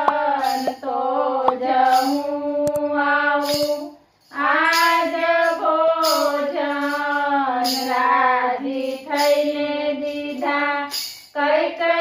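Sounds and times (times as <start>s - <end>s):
women singing in unison: 0.0s - 12.0s.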